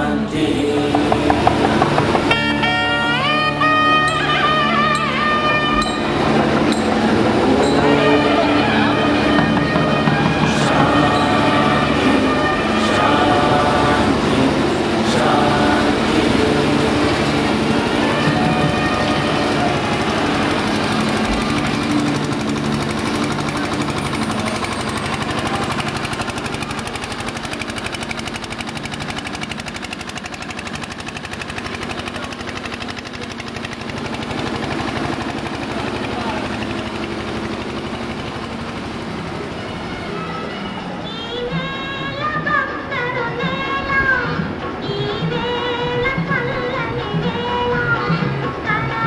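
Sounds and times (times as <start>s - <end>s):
held pipe-like tones: 0.0s - 31.5s
crowd noise: 0.0s - 49.0s
rapid drumming: 0.5s - 3.4s, 6.4s - 39.2s.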